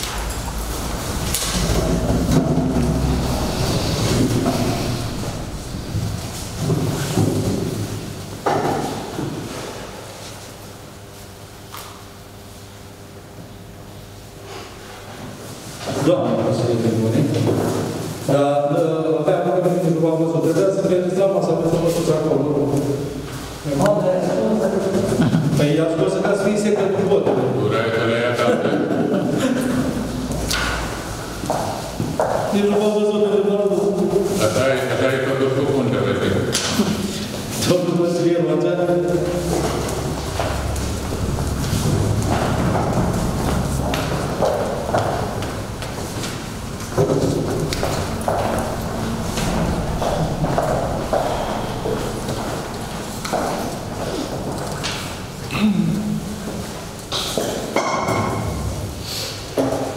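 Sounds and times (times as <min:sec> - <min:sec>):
low room hum: 0:00.0 - 0:59.1.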